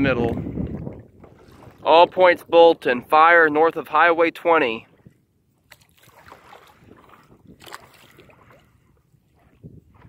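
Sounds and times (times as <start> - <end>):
water lapping against a board: 0.0 - 10.0.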